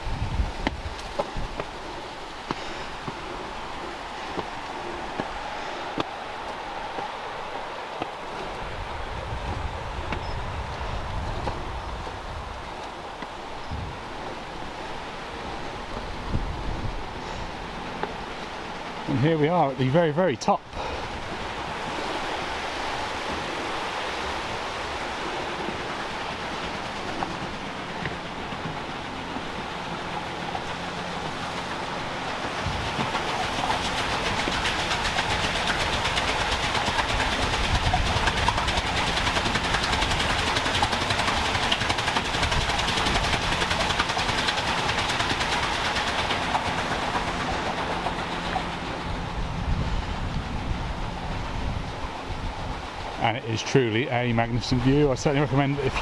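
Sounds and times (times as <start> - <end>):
water rushing through water wheel: 0.0 - 56.0.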